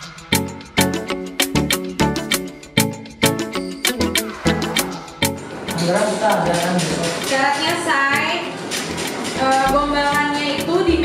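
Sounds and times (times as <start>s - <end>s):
background music with steady beat: 0.0s - 11.0s
woman talking: 7.2s - 8.5s, 9.4s - 11.0s.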